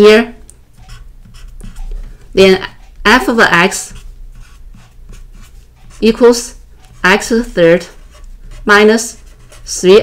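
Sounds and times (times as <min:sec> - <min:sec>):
marker scratching on paper: 0:00.7 - 0:10.0.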